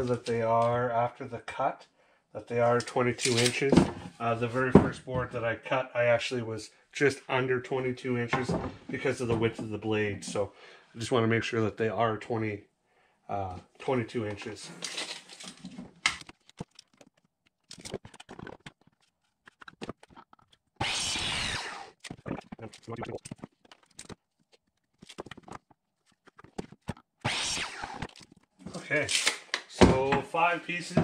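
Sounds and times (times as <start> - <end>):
tape measure blade zipping: 20.8 - 22.2, 27.2 - 28.2.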